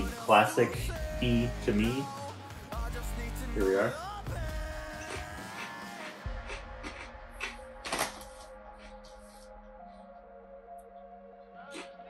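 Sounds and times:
background music: 0:00.0 - 0:12.0
potato chip crunching: 0:11.7 - 0:12.0.

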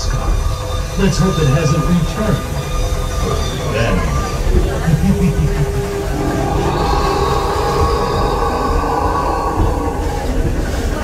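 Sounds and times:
high drawn-out tones: 0:00.0 - 0:11.0
train rumbling on track: 0:00.0 - 0:11.0.

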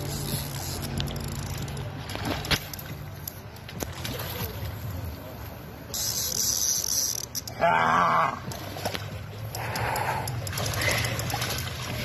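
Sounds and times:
fish splashing in water: 0:08.5 - 0:12.0.

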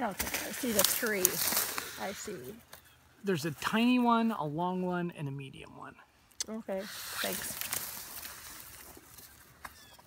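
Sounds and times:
hiss: 0:06.7 - 0:07.7.

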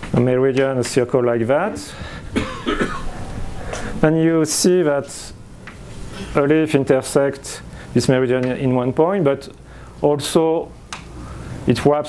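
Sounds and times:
person coughing: 0:02.3 - 0:03.2.

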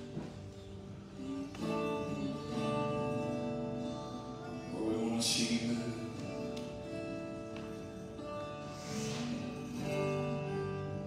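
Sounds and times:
strummed acoustic guitar chords: 0:00.0 - 0:11.0.

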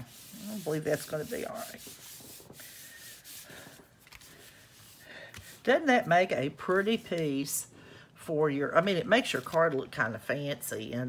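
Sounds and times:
hands brushing over paper: 0:00.0 - 0:06.0.

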